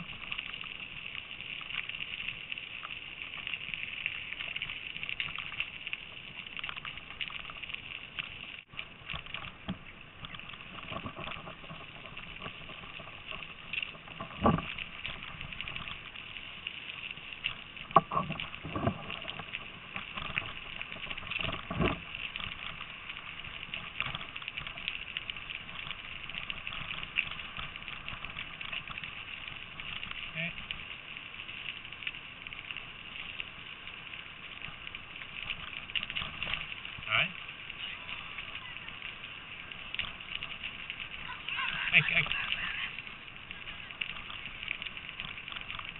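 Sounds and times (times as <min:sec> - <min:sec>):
bicycle tyres crunching on gravel: 0:00.0 - 0:45.9.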